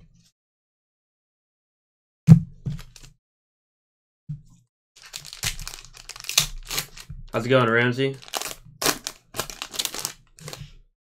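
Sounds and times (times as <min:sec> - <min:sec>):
foil wrapper crinkling and tearing: 0:05.0 - 0:10.7.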